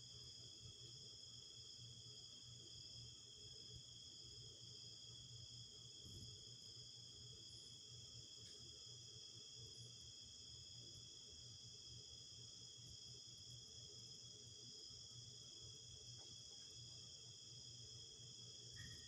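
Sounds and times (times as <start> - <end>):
crickets trilling: 13.4 - 19.0.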